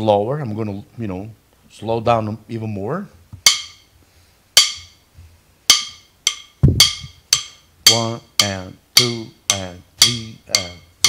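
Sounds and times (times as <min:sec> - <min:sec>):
slow drum kit playing: 0:04.6 - 0:11.0.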